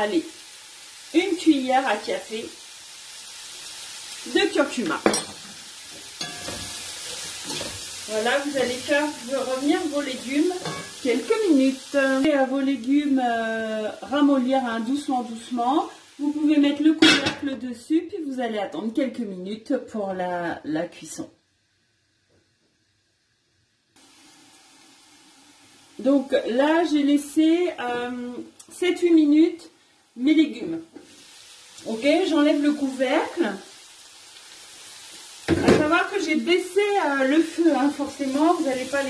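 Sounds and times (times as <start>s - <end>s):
utensil stirring vegetables: 0.0s - 13.2s, 30.3s - 39.0s
vegetables sizzling in hot oil: 0.0s - 39.0s.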